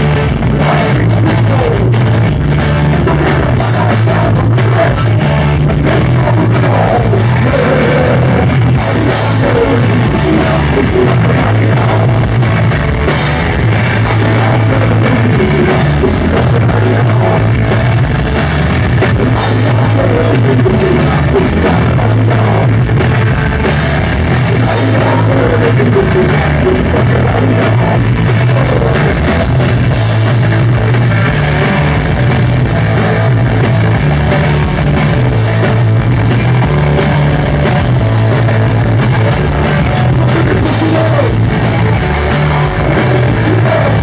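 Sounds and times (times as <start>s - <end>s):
person singing: 0.0s - 2.1s, 3.0s - 12.5s, 13.6s - 17.8s, 19.0s - 22.9s, 24.3s - 29.5s, 39.2s - 44.0s
punk rock band playing: 0.0s - 44.0s.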